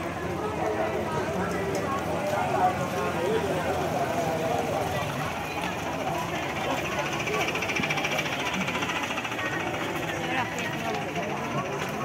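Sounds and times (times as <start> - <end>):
crowd voices: 0.0 - 12.0
small motorcycle engine rattling: 0.0 - 12.0.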